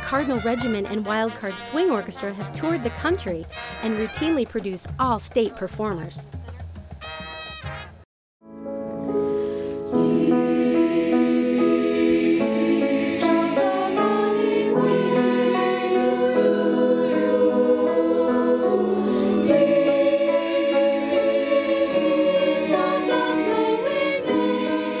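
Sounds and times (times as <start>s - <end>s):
choir singing sustained chords: 9.9s - 25.0s.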